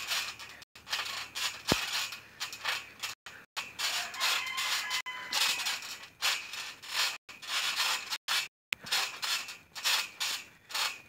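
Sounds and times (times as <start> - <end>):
trampoline creaking under feet: 0.0 - 11.0.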